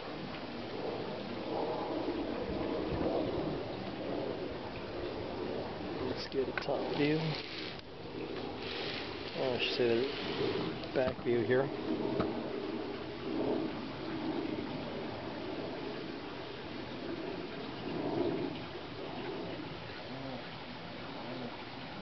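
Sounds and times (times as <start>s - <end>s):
steady background hiss: 0.0s - 22.0s
dove cooing: 17.1s - 22.0s.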